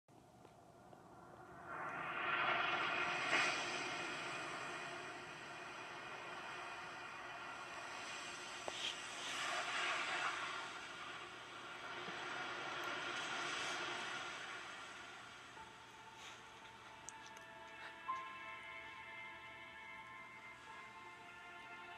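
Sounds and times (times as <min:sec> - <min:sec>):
faint music: 0:00.1 - 0:21.9
rushing wind: 0:01.0 - 0:15.7
crashing sea waves: 0:01.7 - 0:15.9.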